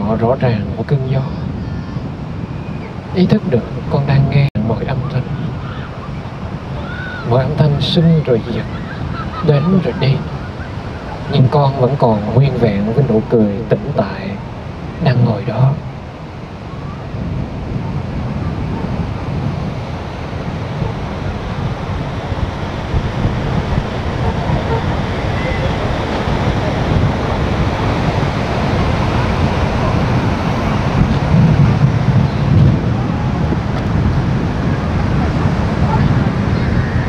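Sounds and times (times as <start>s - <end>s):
sea surf washing on beach: 0.0s - 37.0s
wind buffeting microphone: 0.0s - 37.0s.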